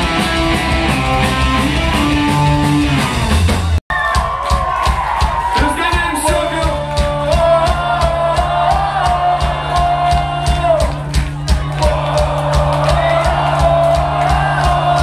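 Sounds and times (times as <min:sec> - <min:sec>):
electric guitar: 0:00.0 - 0:03.8
bass guitar: 0:00.0 - 0:04.1
drums: 0:00.0 - 0:15.0
person singing: 0:05.6 - 0:10.9.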